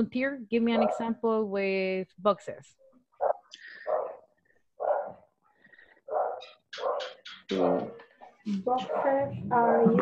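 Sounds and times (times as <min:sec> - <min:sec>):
dog barking: 0:00.7 - 0:01.1, 0:03.2 - 0:05.3, 0:06.1 - 0:07.2, 0:08.8 - 0:09.2.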